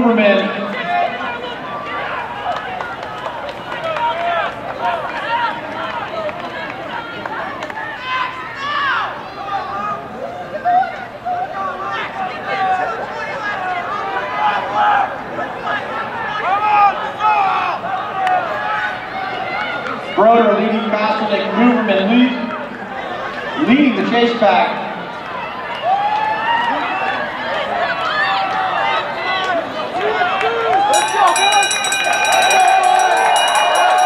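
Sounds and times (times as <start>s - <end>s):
spectators shouting and cheering: 0.0s - 34.0s.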